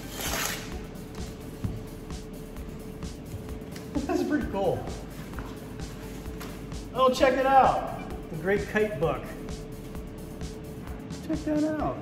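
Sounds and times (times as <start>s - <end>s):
paper envelope tearing: 0.0s - 0.7s
quiet background music: 0.0s - 12.0s.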